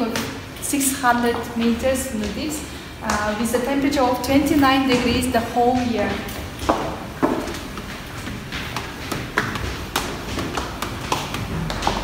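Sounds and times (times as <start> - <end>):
footsteps on stone stairs: 0.0 - 12.0.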